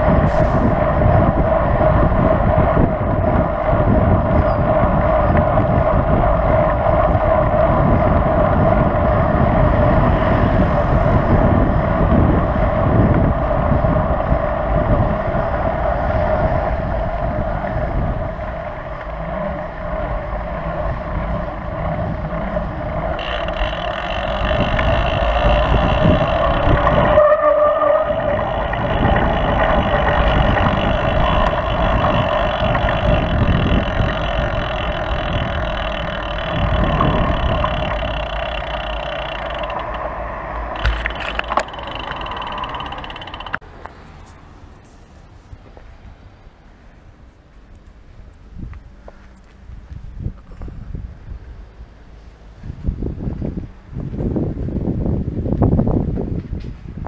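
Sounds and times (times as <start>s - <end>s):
wind rush: 0.0s - 43.6s, 52.5s - 57.0s
bike tyre rumble on pavement: 0.0s - 44.3s
sharp bike clicks: 18.3s - 44.0s.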